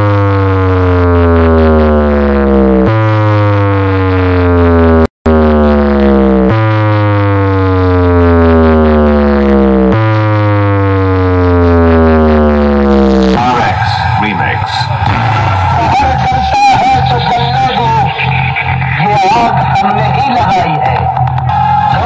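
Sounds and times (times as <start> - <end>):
electronic test tones gliding down: 0.0 - 21.2.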